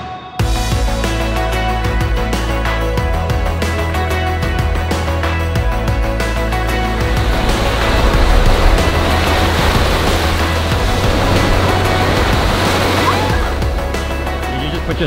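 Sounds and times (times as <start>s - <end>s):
background music: 0.0s - 15.0s
waves washing on sandy beach: 6.8s - 13.6s.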